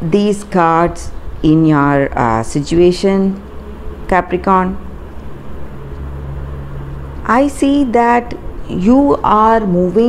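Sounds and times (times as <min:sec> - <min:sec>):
faint hum: 0:00.0 - 0:10.0
low background rumble: 0:00.0 - 0:10.0.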